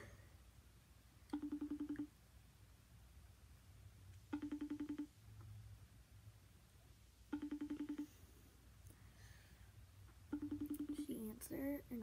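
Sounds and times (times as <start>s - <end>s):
phone ringback tone: 1.3s - 2.1s, 4.3s - 5.2s, 7.3s - 8.4s, 10.3s - 11.2s.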